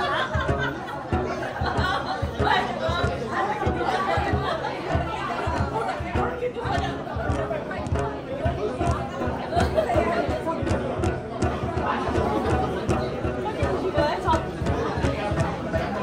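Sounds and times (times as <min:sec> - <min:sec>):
overlapping conversations: 0:00.0 - 0:16.0.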